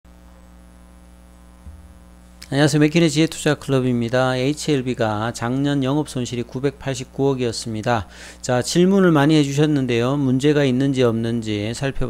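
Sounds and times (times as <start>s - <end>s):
electrical mains hum: 0.1s - 12.0s
soft low thump: 1.6s - 2.2s.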